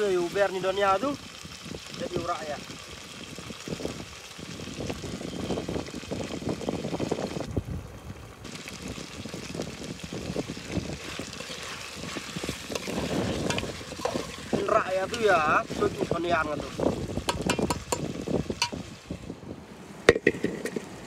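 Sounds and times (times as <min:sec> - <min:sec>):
curry bubbling and spitting in a pot: 0:00.0 - 0:07.5, 0:08.2 - 0:19.3
wind on microphone: 0:00.9 - 0:21.0
metal spoon scraping a pot: 0:11.0 - 0:15.9.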